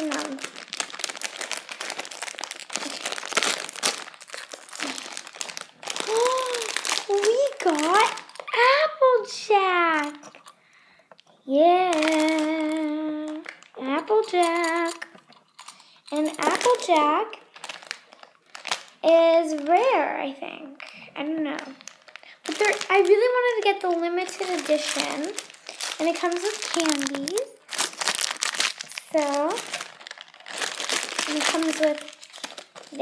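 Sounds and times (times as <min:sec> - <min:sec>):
foil packet crinkling and tearing: 0:00.0 - 0:08.8, 0:09.7 - 0:10.6, 0:11.7 - 0:20.2, 0:20.8 - 0:33.0.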